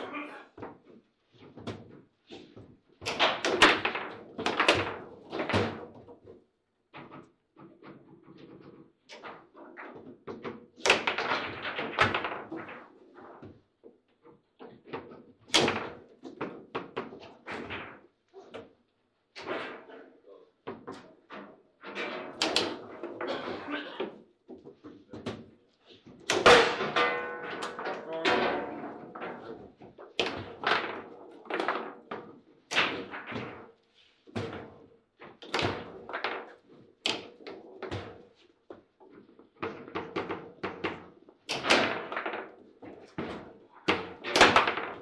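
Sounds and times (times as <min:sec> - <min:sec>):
table football knocks and clacks: 0:00.6 - 0:18.8, 0:20.6 - 0:45.0.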